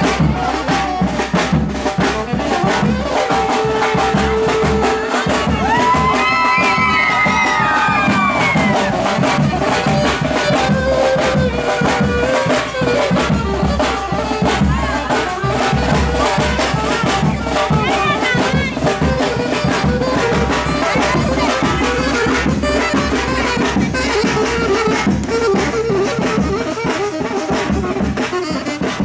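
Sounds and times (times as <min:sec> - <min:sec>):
saxophone melody: 0:00.0 - 0:29.0
steady drum beat: 0:00.0 - 0:29.0.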